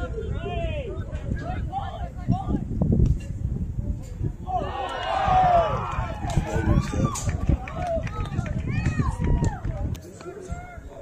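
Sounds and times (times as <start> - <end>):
voices shouting calls: 4.4 - 11.0.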